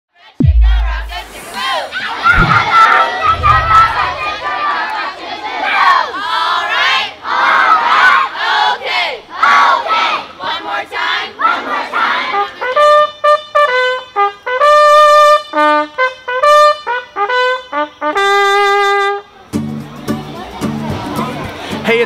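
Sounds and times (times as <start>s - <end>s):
deep falling boom: 0.4s - 1.4s, 2.3s - 4.6s
low rumbles: 0.4s - 1.4s, 2.4s - 4.5s
children shouting and cheering: 0.8s - 10.4s.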